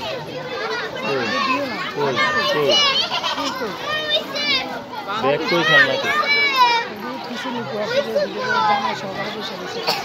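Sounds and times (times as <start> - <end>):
children calling and chattering: 0.0 - 10.0.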